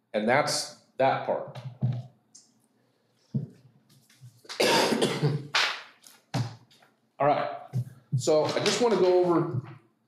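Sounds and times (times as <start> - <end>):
loud harsh cough: 4.5 - 5.5.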